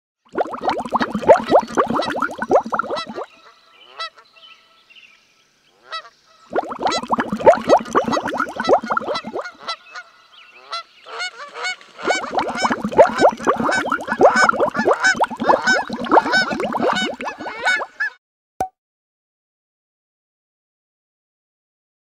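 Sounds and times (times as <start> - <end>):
geese honking: 17.2 - 18.2.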